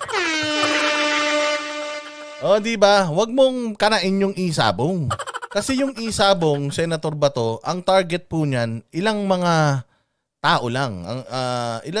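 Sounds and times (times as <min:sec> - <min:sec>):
air horn tone: 0:00.0 - 0:02.8.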